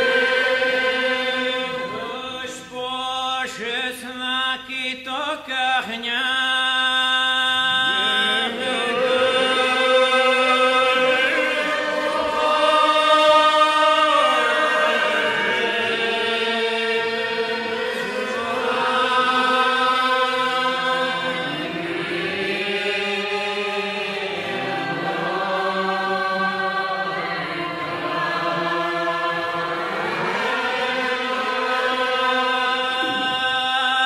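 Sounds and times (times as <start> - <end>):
voices chanting long notes: 0.0 - 2.9, 7.6 - 34.0.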